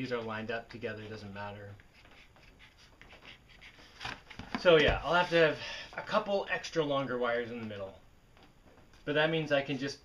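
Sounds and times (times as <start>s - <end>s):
pencil scratching on cardboard: 1.8s - 3.9s.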